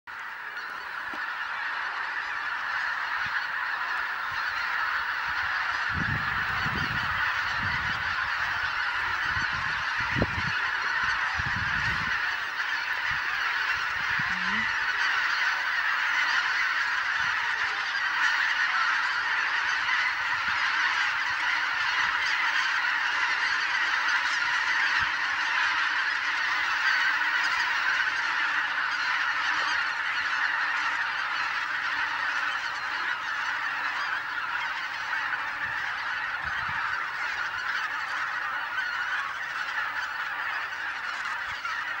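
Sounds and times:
flock of geese honking: 0.1s - 42.0s.

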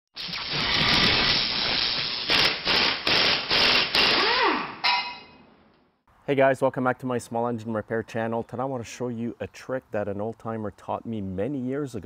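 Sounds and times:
sharp ringing hit: 4.8s - 5.4s.

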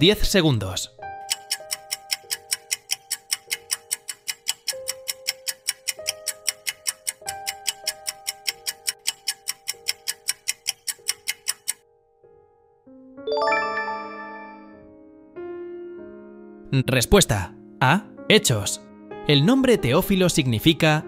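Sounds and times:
clock-like ticking: 1.2s - 11.8s
soft musical tone: 12.0s - 15.2s.

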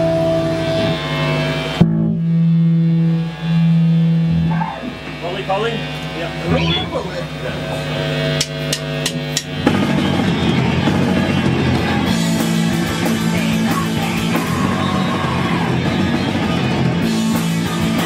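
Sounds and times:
electric guitars ringing: 0.0s - 18.0s
rock band playing: 0.0s - 18.0s
voices: 4.5s - 9.0s, 11.2s - 18.0s
drumstick clicks: 8.4s - 9.6s.

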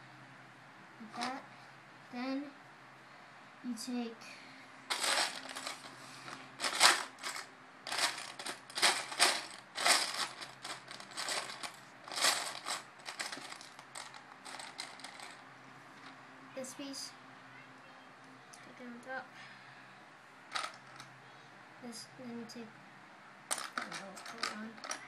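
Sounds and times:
plastic bricks rattling and clicking: 4.9s - 15.4s, 20.5s - 21.1s, 23.5s - 25.0s.

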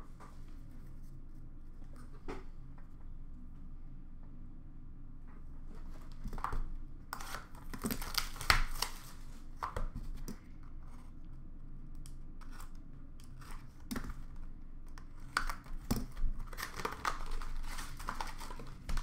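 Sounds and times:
plastic wrap and cardboard tearing: 7.2s - 9.2s, 15.3s - 19.0s.

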